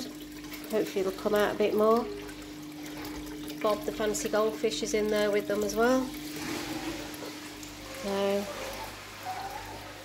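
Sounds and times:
water splashing and trickling: 0.0s - 10.0s.

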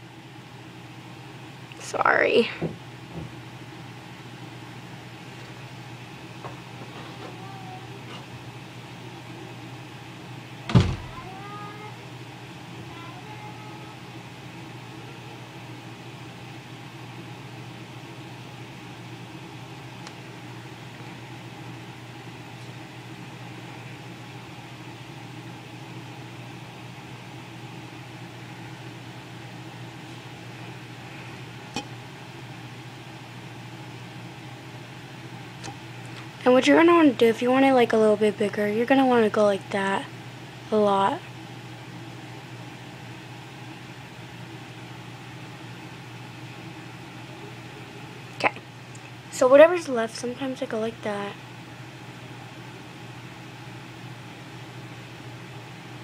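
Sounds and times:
low background hum: 0.0s - 56.0s.

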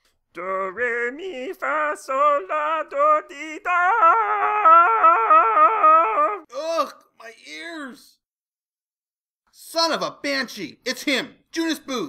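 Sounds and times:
cartoon voice singing scale: 0.7s - 6.5s
short rising falling vocal sound: 3.8s - 6.5s.

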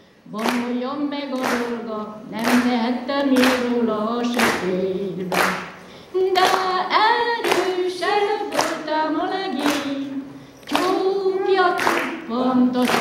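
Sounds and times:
women's choir singing folk song: 0.3s - 5.4s, 6.2s - 13.0s
hand clap on the beat: 0.4s - 1.8s, 2.4s - 6.8s, 7.4s - 8.9s, 9.6s - 10.0s, 10.6s - 11.1s, 11.8s - 13.0s.

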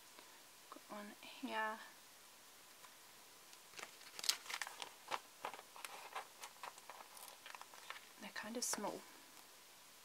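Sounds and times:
sticker sheet crackling: 3.7s - 8.9s.

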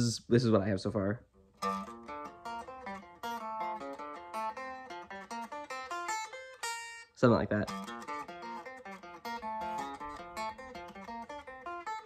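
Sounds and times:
electric guitar picked notes: 1.6s - 12.0s.

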